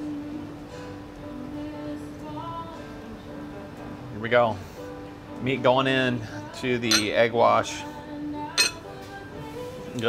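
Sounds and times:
background music with held notes: 0.0 - 10.0
chopsticks clinking ceramic bowl: 6.9 - 7.2, 8.6 - 8.9.

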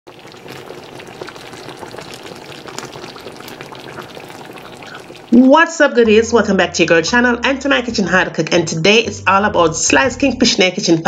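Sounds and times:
sauce bubbling in a pan: 0.0 - 6.5.

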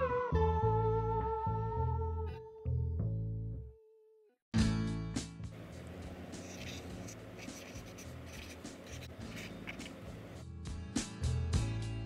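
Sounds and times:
marker scratching on board: 6.2 - 10.2.

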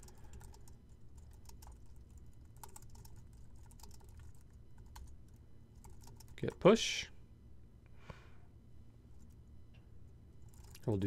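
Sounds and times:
keyboard typing: 0.0 - 6.6, 10.4 - 10.9.

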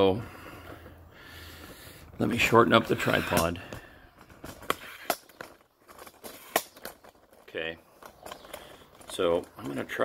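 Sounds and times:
tripod sections clicking: 4.2 - 10.0.

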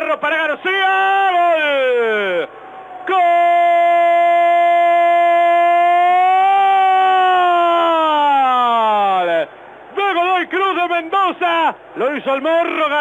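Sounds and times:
fast excited commentary: 9.0 - 13.0.

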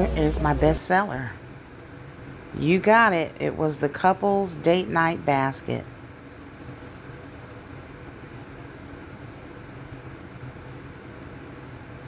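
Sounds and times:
low room hum with hiss: 0.0 - 12.0.

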